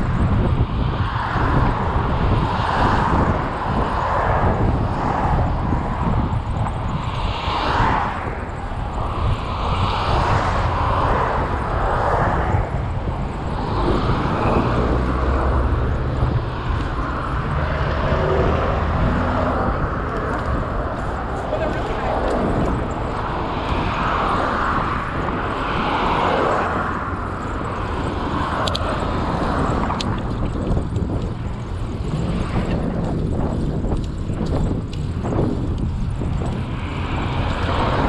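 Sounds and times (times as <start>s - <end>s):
wind rushing over microphone: 0.0s - 38.0s.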